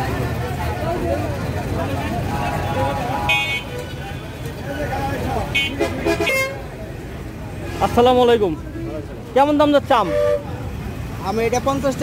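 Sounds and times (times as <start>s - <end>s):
crowd chatter: 0.0s - 12.0s
traffic rumble: 0.0s - 12.0s
vehicle horn toots: 2.6s - 4.0s, 5.5s - 6.6s, 10.0s - 10.6s.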